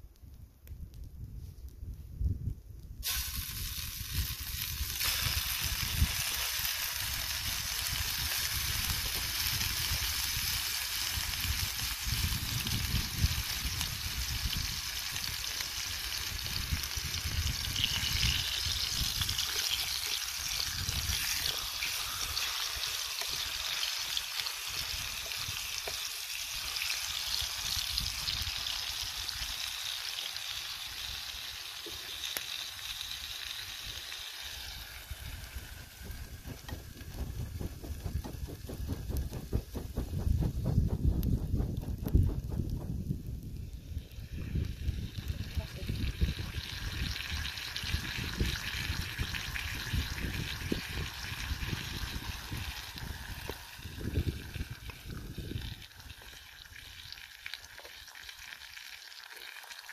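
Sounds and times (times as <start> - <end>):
food sizzling in frying pan: 3.0 - 40.6, 43.4 - 59.9.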